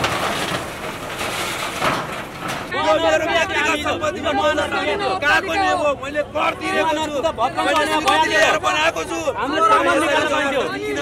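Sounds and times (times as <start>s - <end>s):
diesel engine running: 0.0s - 2.9s
crowd: 1.5s - 11.0s.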